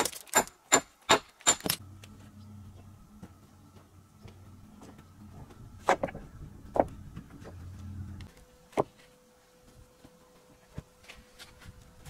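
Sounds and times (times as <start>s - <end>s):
faint low hum: 1.8s - 12.0s.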